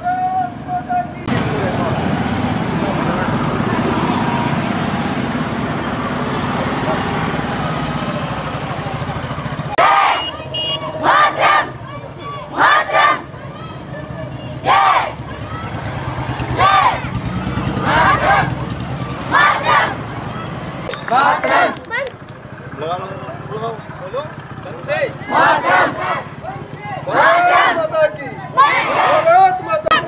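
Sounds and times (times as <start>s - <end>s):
motorcycles riding past: 1.2s - 30.0s
children shouting in unison: 9.8s - 13.9s, 14.6s - 18.5s, 19.3s - 20.6s, 25.3s - 26.3s, 27.1s - 27.8s, 28.6s - 29.3s.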